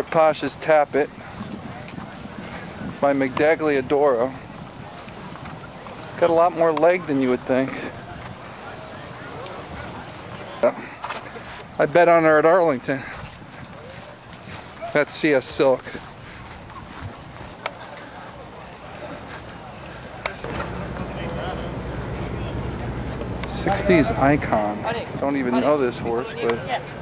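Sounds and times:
hoofbeats on dirt: 0.0s - 25.6s
outdoor background noise: 0.0s - 27.0s
horse hoofbeats on dirt: 12.6s - 25.4s
low outdoor hum: 18.3s - 27.0s.

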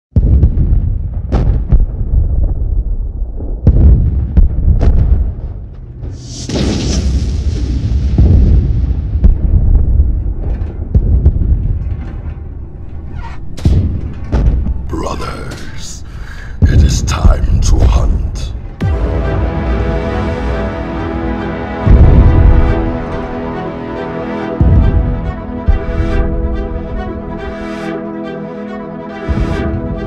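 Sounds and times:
heavy booming hits: 0.1s - 12.8s, 13.6s - 15.0s, 16.5s - 27.6s
cinematic trailer music: 0.1s - 30.0s.

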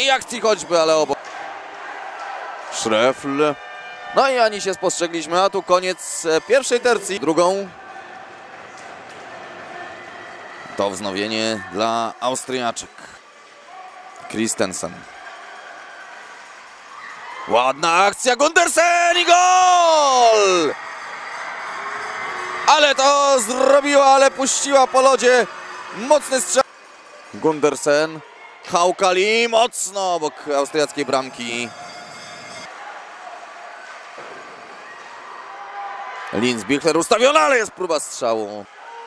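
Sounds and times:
ice rink hall noise: 0.0s - 39.0s.

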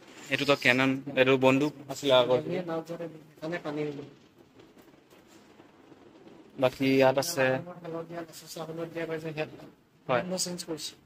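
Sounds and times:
man speaking: 0.3s - 4.2s, 6.6s - 11.0s.

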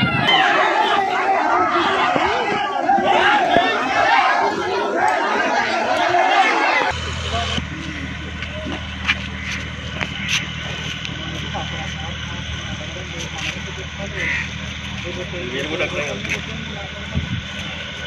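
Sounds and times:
faint voices: 0.0s - 18.0s
low boat engine drone: 0.0s - 18.0s
men shouting and talking: 0.0s - 18.0s.

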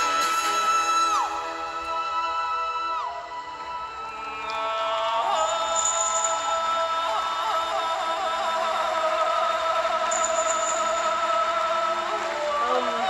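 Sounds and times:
backing music: 0.0s - 13.0s
man singing long high note: 0.0s - 13.0s.

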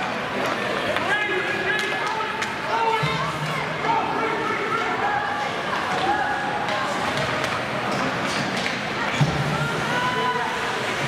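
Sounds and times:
people shouting and chatting: 0.0s - 11.0s.

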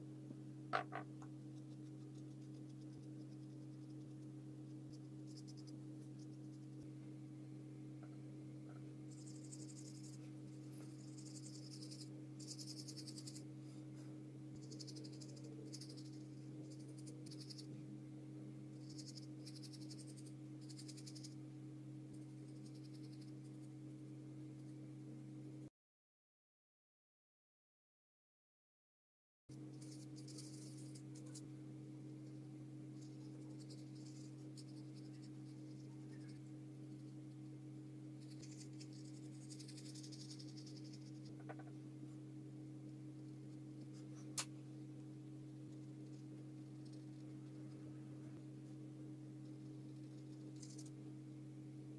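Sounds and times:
steady low hum: 0.0s - 25.7s, 29.5s - 51.9s
paintbrush strokes on paper: 33.0s - 37.1s, 38.2s - 41.6s.

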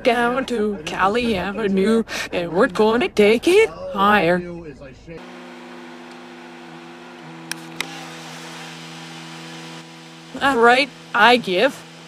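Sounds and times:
short sharp clicks: 7.4s - 7.9s.

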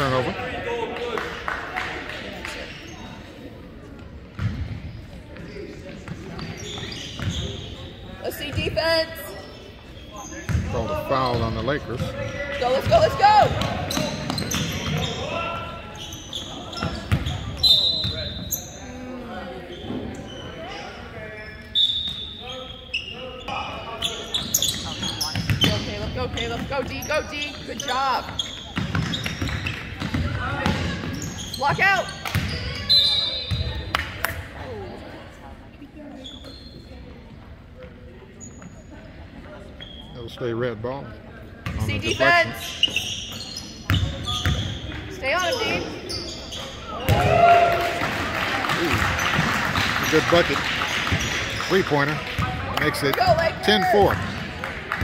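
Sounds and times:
people shouting and chattering: 0.0s - 55.0s.

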